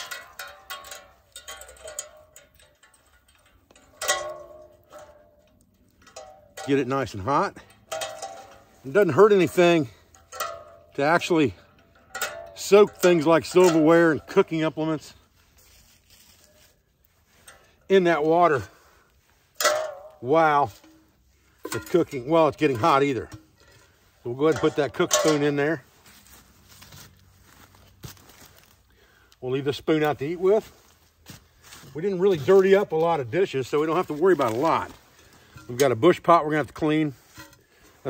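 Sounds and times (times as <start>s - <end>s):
ringing metal clang: 0.0s - 14.6s, 19.6s - 23.8s, 24.4s - 25.8s
wire bail clanking: 0.0s - 27.2s, 31.8s - 38.0s
man talking: 6.6s - 7.6s, 8.8s - 10.0s, 10.9s - 11.6s, 12.6s - 15.2s, 17.9s - 18.8s, 20.2s - 20.8s, 21.7s - 23.4s, 24.2s - 25.9s, 29.4s - 30.8s, 31.9s - 35.0s, 35.7s - 37.2s.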